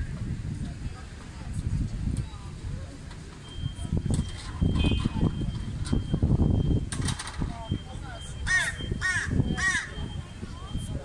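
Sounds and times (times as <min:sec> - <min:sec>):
crow cawing: 0:08.5 - 0:10.0.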